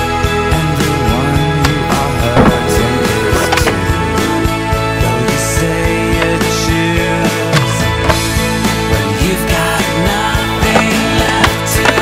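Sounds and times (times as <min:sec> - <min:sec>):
guitar-driven music: 0:00.0 - 0:12.0
skateboard landing on concrete: 0:02.4 - 0:02.8.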